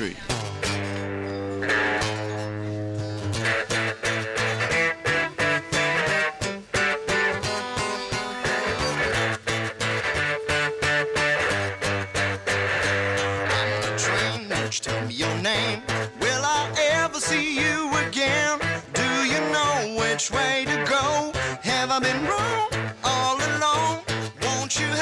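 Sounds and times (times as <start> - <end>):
guitars strumming chords: 0.0 - 25.0.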